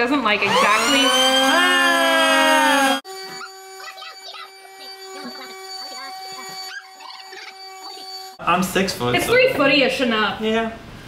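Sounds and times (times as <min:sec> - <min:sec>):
steady humming tone: 0:00.5 - 0:08.8.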